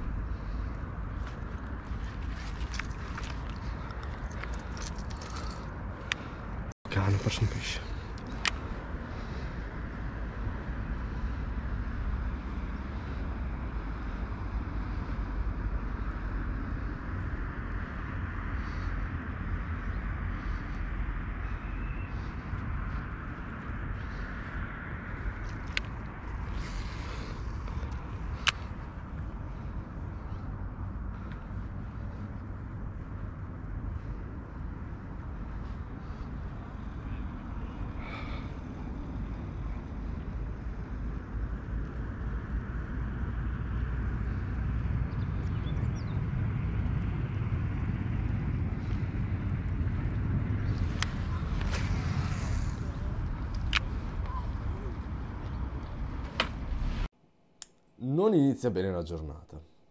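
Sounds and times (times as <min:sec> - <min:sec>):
low outdoor rumble: 0:00.0 - 0:57.6.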